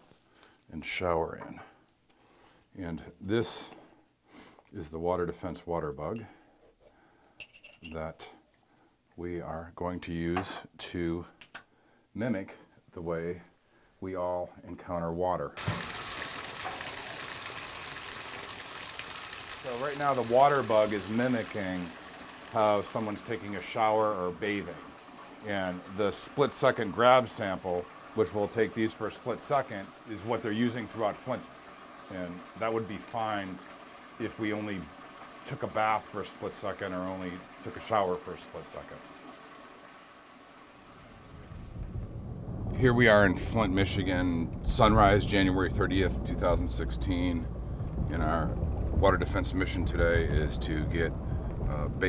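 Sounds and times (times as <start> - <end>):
faint hiss: 0.0 - 14.6, 15.5 - 52.0
tap water running into bathtub: 15.6 - 41.3
man's voice: 19.6 - 21.9, 22.5 - 24.8, 42.8 - 47.4, 48.1 - 51.1, 51.7 - 52.0
vehicle road noise rumble: 44.4 - 51.7.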